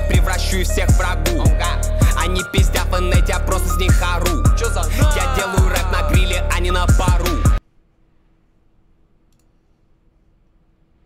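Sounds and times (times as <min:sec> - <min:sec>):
faint mouse click: 0:09.3 - 0:09.8.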